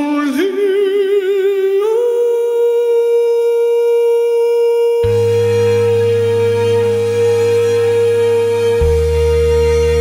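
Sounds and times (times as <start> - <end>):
man singing a long high note: 0.0 - 9.2.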